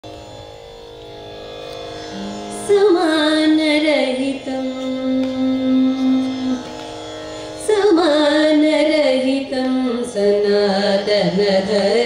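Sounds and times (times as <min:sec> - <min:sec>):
electronic tanpura drone: 0:00.0 - 0:12.0.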